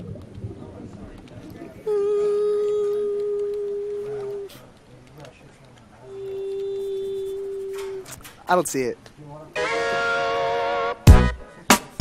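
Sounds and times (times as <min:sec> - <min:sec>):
steady pure tone: 0:06.0 - 0:08.2, 0:09.6 - 0:11.3.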